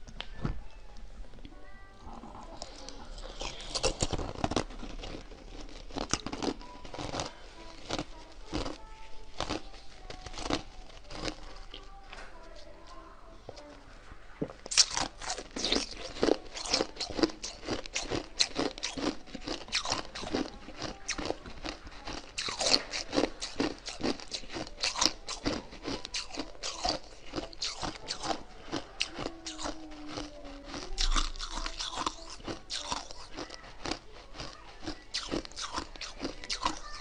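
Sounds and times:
ice crunching between teeth: 2.6s - 11.9s, 14.7s - 37.0s.

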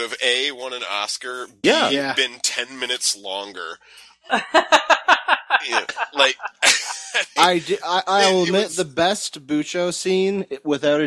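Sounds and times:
men laughing: 4.3s - 8.8s.

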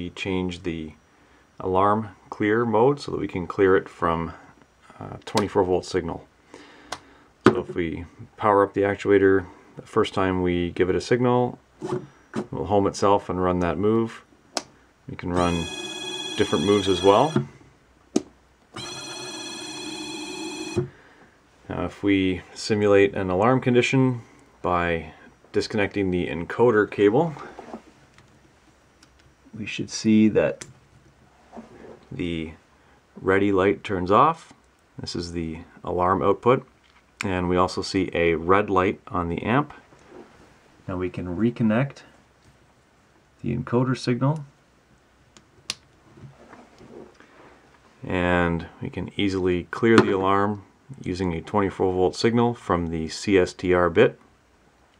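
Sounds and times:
electric motor whining: 15.4s - 17.4s, 18.8s - 20.9s
faint handling sounds: 25.4s - 29.4s, 30.8s - 32.2s, 45.9s - 48.1s.

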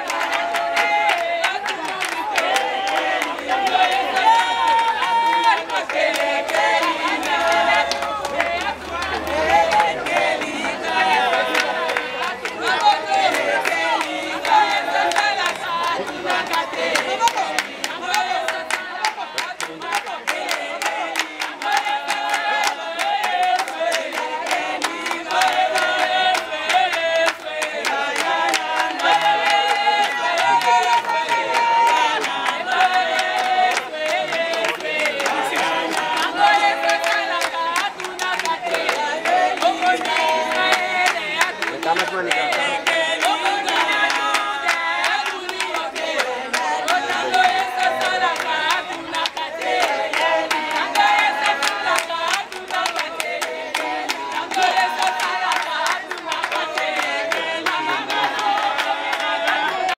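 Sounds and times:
hands clapping rhythmically: 0.0s - 59.9s
women singing unaccompanied: 0.0s - 59.9s.

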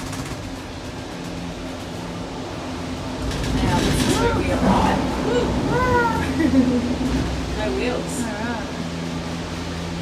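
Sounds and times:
cable car mechanical hum: 0.0s - 10.0s.

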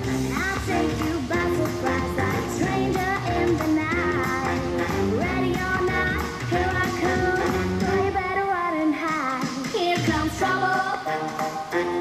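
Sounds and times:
bass and beat: 0.0s - 8.4s, 9.1s - 12.0s.

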